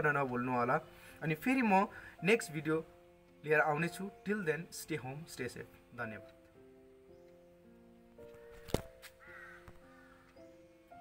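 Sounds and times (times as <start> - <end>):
quiet music of held notes: 0.0 - 11.0.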